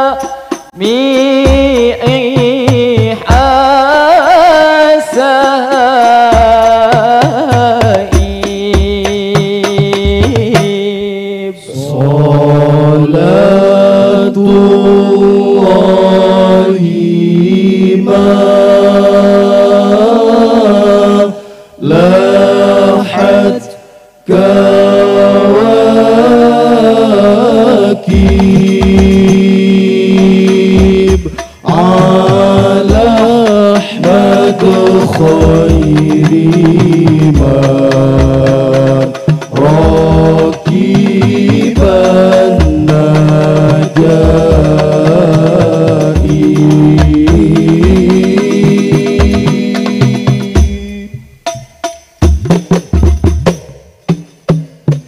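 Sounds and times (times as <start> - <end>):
percussion beat: 0.0 - 11.0, 21.9 - 55.0
male group chanting in unison: 0.0 - 51.2
hand-struck frame drums: 1.4 - 3.9, 5.7 - 10.8, 28.1 - 55.0.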